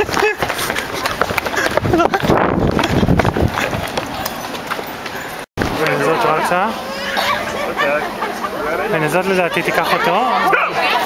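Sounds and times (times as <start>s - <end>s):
running footsteps on pavement: 0.0s - 6.6s.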